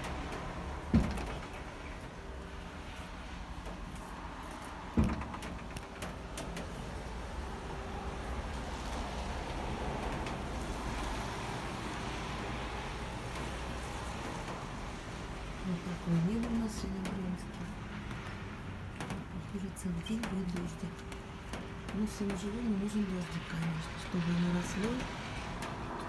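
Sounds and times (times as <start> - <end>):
distant city traffic hum: 0.0 - 26.0
dull thumps: 0.9 - 1.8, 4.9 - 6.7.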